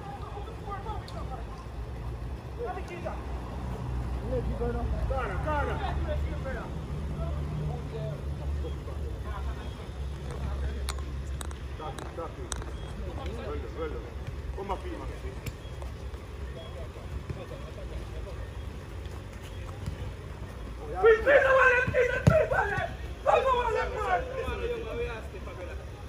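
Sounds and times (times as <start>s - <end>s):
players calling out: 11.6s - 26.0s.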